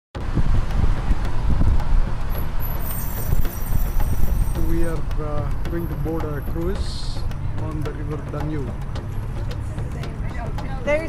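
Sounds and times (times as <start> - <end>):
road traffic rumble: 0.2 - 11.0.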